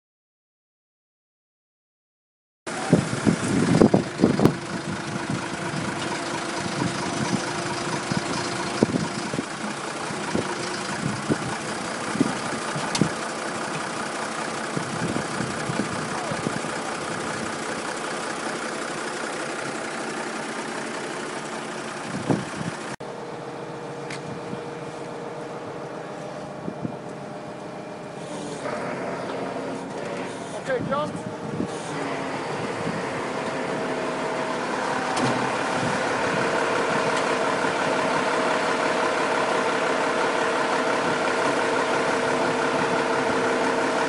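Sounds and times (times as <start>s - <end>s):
diesel engine running: 2.7s - 44.0s.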